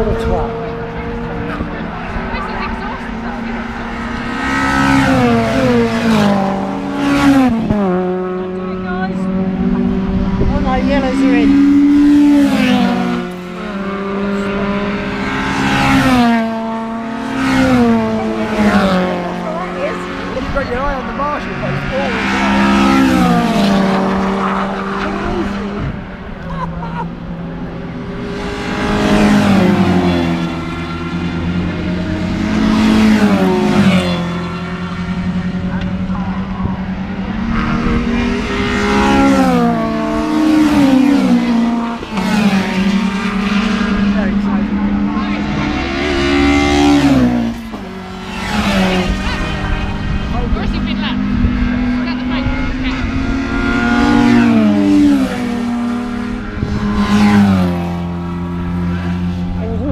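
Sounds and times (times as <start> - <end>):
cars passing by: 0.0 - 59.9
racing car engines at full throttle: 0.0 - 59.9.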